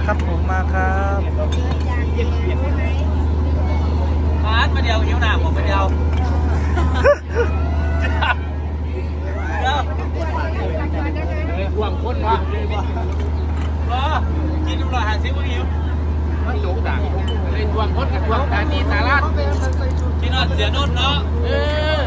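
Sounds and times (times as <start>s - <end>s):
crowd chatter: 0.0s - 22.0s
diesel generator humming: 0.0s - 22.0s.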